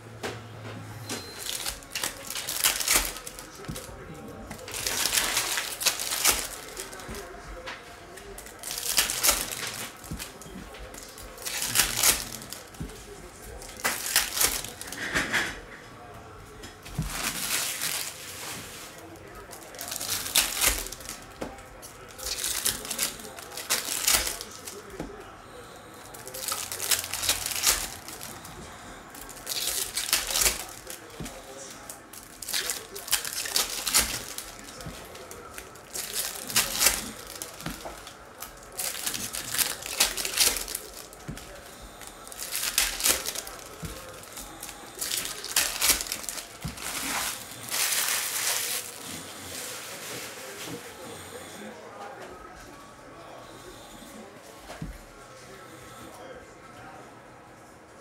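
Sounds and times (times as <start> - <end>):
wrappers crinkling and tearing: 1.2 - 15.7, 16.9 - 51.0.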